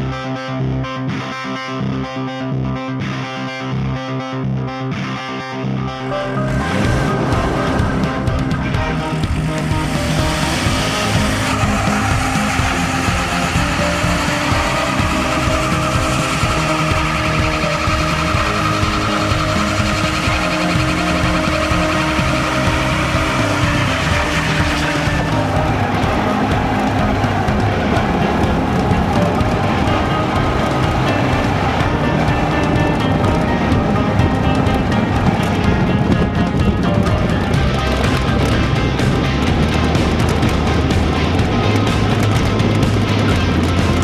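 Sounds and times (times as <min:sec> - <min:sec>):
loud background music: 0:00.0 - 0:44.0.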